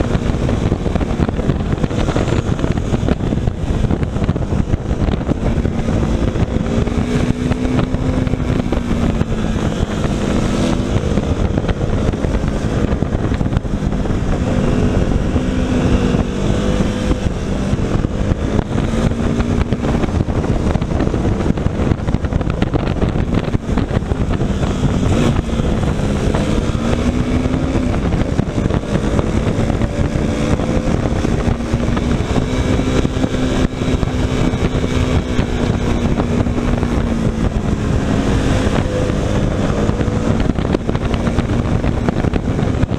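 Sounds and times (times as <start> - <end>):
motorcycle engine revving: 0.0 - 42.9
wind noise on microphone: 0.0 - 42.9.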